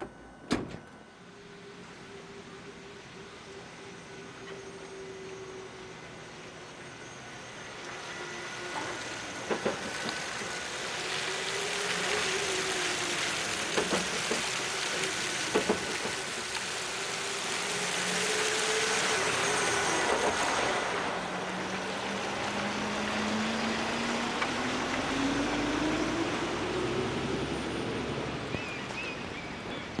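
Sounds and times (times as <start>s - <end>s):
truck whine: 0.0s - 30.0s
truck driving past: 17.6s - 28.5s.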